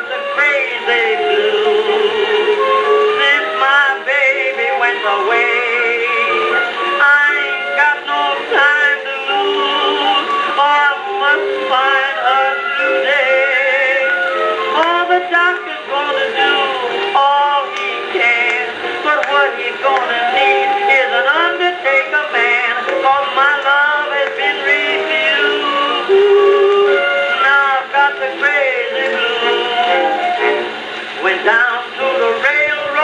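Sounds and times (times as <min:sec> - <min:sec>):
old jazz blues record playing: 0:00.0 - 0:33.0.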